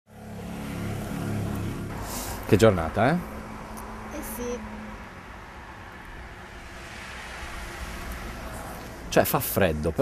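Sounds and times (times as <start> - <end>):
street traffic: 0.1 - 10.0.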